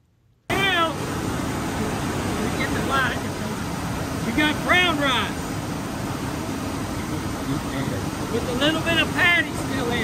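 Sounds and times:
rice mill machines running: 0.5s - 10.0s.

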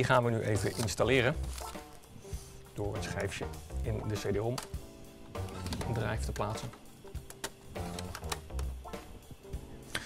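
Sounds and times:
background music: 0.0s - 10.0s
disc drive tray clicks: 0.6s - 1.0s, 5.4s - 8.8s
disc drive whirring: 4.2s - 9.9s.

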